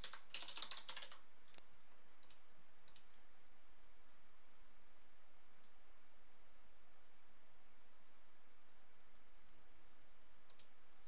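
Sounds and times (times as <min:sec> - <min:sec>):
typing on a keyboard: 0:00.0 - 0:01.2.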